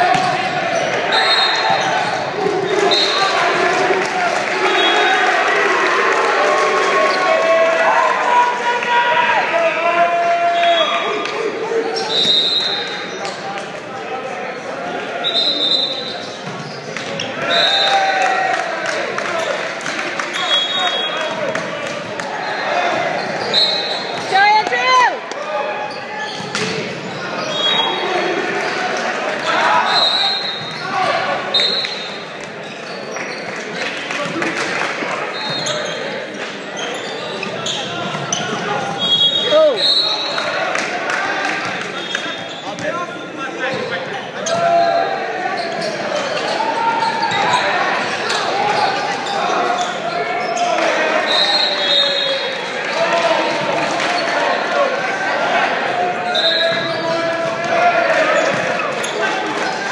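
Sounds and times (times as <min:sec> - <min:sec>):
people calling and shouting: 0:00.0 - 0:59.9.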